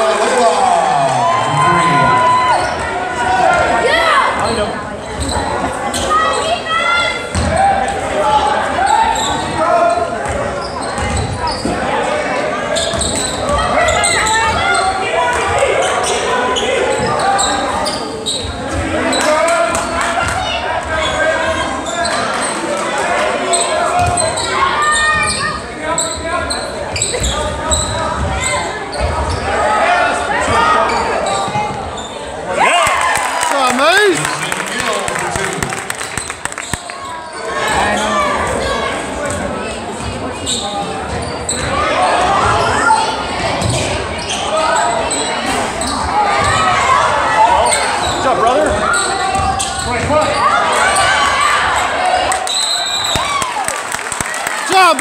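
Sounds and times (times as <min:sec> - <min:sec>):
crowd voices and shouts: 0:00.0 - 0:55.0.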